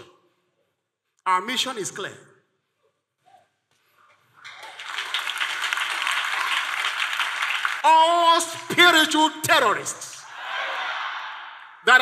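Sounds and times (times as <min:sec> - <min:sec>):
congregation applauding: 0:04.4 - 0:08.2.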